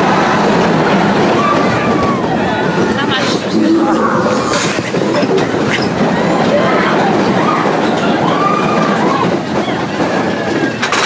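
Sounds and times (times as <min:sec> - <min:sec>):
roller coaster cars rattling: 0:00.0 - 0:11.0.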